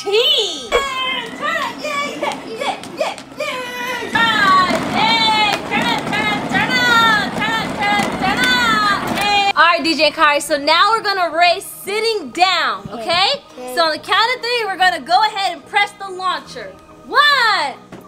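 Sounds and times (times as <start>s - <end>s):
children shouting and cheering: 0.0s - 9.5s.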